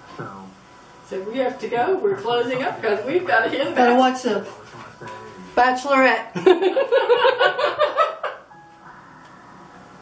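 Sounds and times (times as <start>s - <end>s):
faint steady tones: 0.0s - 5.6s, 7.3s - 10.0s
laughter: 6.4s - 8.5s.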